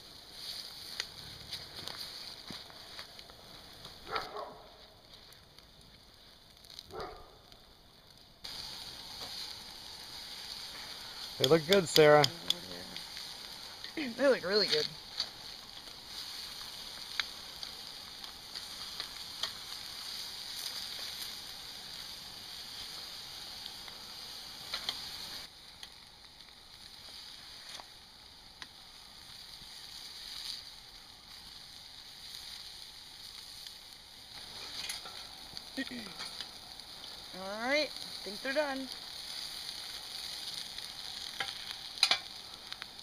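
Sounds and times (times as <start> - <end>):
meat sizzling on a grill: 0.0 - 43.0.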